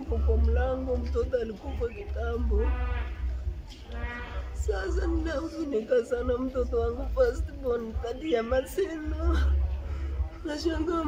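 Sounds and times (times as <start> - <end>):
low steady rumble: 0.0 - 8.1, 8.9 - 11.0.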